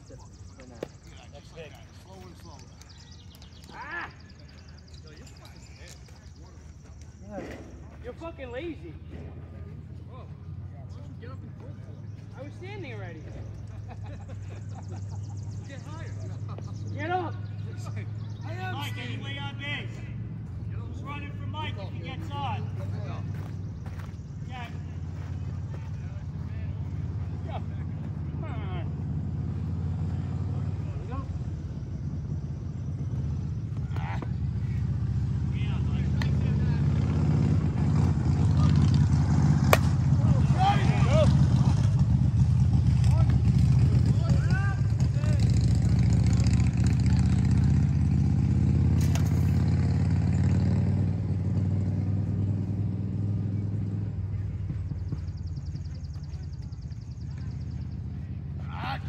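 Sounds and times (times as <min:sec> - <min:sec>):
distant voices: 0:00.0 - 0:59.0
vehicle engine rumble: 0:00.0 - 0:59.0.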